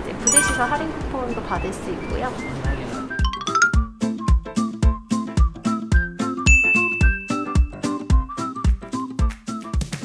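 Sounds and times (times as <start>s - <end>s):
bell-like ding: 0.2s - 1.4s, 6.5s - 7.6s
background music with beat: 3.0s - 10.0s.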